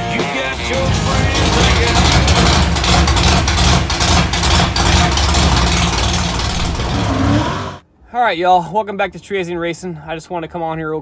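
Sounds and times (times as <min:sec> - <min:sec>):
loud unmuffled car engine rumbling: 0:00.1 - 0:07.8.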